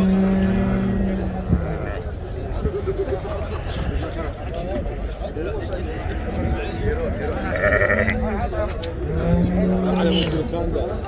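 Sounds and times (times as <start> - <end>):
men's voices: 0.0 - 11.0
sheep bleating: 7.4 - 8.2.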